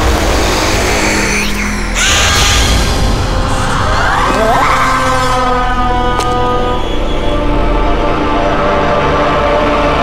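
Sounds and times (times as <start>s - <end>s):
tense dramatic score: 0.0s - 10.0s.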